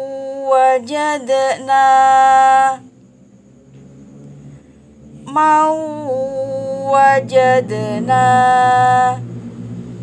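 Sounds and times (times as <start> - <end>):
woman chanting recitation: 0.0 - 2.9, 5.3 - 9.2.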